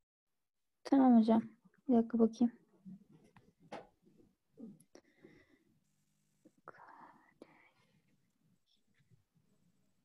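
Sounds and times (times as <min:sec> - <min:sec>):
faint breathy noise: 0:04.6 - 0:09.1.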